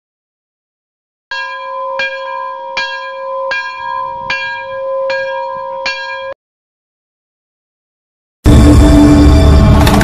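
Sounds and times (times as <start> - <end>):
large temple bell ringing: 1.3 - 6.4.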